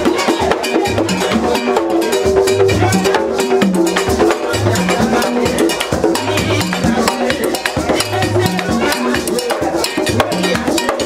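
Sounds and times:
fast drum beat: 0.0s - 11.0s.

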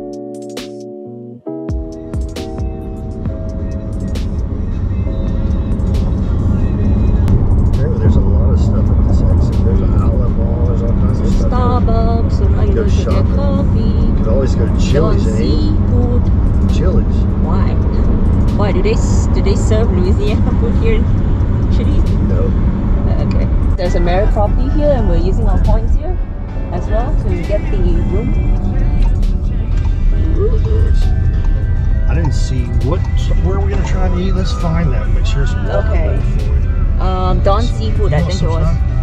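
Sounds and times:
car road and engine noise: 1.7s - 39.0s
people talking: 7.7s - 21.1s, 21.7s - 29.1s, 30.0s - 31.2s, 32.0s - 39.0s.

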